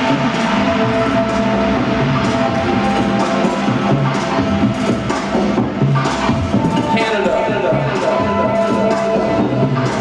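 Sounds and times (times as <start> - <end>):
bass line: 0.0 - 10.0
held synth notes: 0.0 - 10.0.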